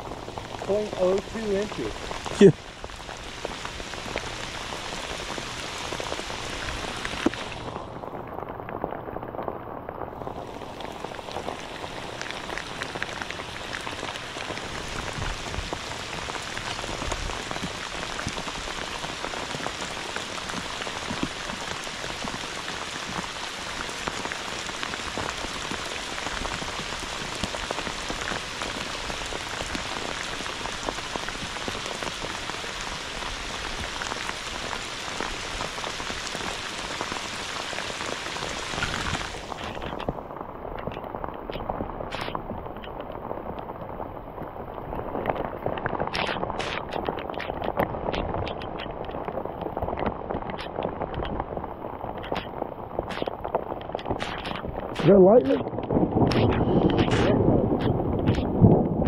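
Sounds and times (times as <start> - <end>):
heavy rain on lake surface: 0.0 - 59.0.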